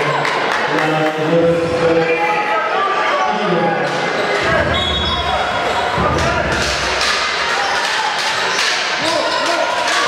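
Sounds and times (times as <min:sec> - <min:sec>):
indistinct voices in gym: 0:00.0 - 0:10.0.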